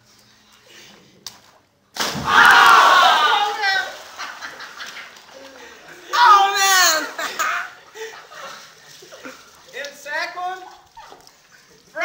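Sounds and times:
body landing thud: 0:02.0 - 0:02.9
men shouting and cheering: 0:02.2 - 0:04.4, 0:05.5 - 0:08.2.

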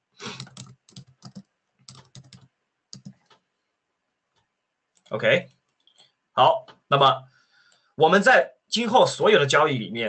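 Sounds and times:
computer keyboard typing: 0:00.2 - 0:03.4.

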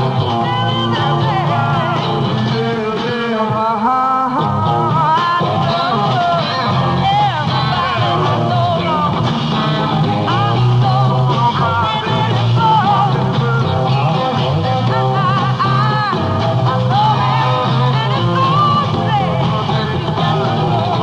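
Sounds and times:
drum kit: 0:00.0 - 0:21.0
electric guitar: 0:00.0 - 0:21.0
person singing: 0:00.0 - 0:21.0.

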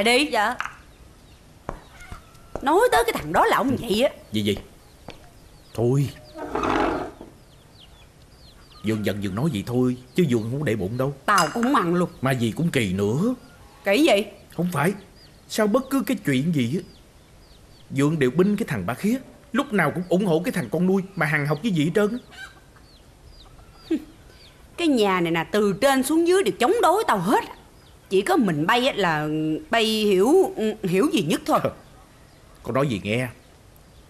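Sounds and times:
faint bird chirping calls: 0:00.0 - 0:34.0
falling bird call: 0:06.0 - 0:07.4.

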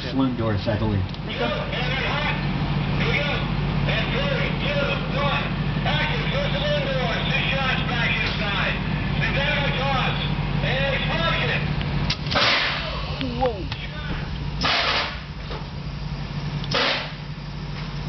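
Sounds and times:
loud gunshots: 0:12.3 - 0:12.9, 0:14.6 - 0:15.2, 0:16.7 - 0:17.2.

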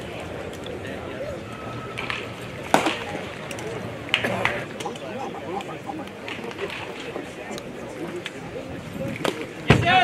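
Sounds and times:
faint voices: 0:03.0 - 0:09.5.

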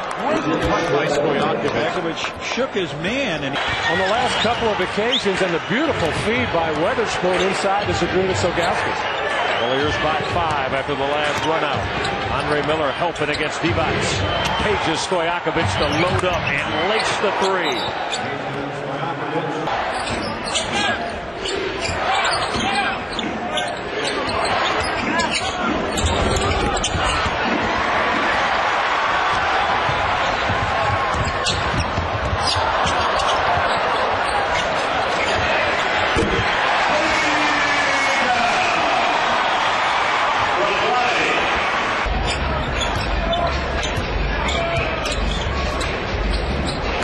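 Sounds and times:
crowd noise: 0:00.0 - 0:47.0
basketball bouncing on hardwood: 0:29.3 - 0:33.8.

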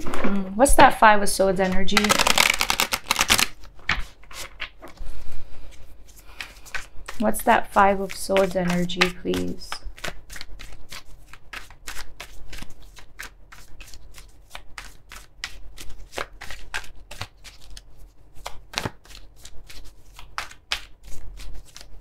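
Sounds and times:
cards being shuffled: 0:01.6 - 0:22.0.

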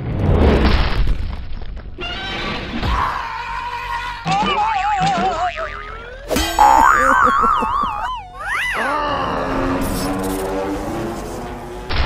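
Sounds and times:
cartoon boing tones: 0:04.4 - 0:08.9.

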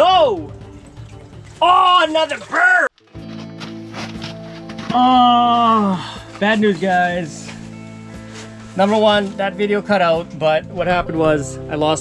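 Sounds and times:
background music with held low notes: 0:00.0 - 0:12.0.

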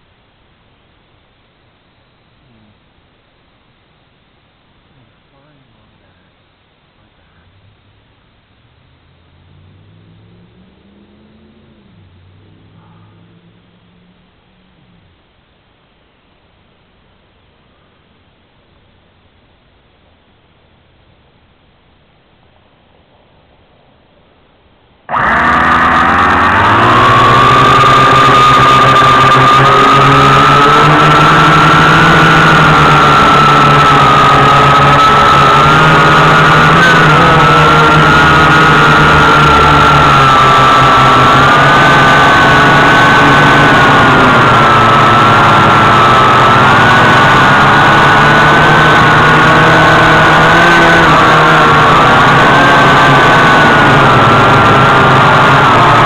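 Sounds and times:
drone motors whining: 0:25.1 - 0:56.0.

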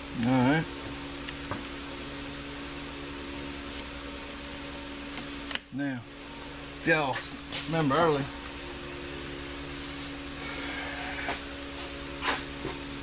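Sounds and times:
electric fan humming: 0:00.0 - 0:13.0.

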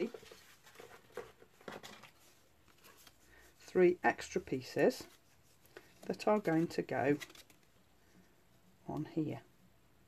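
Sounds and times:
paper rustling: 0:00.0 - 0:03.7, 0:04.8 - 0:07.8.

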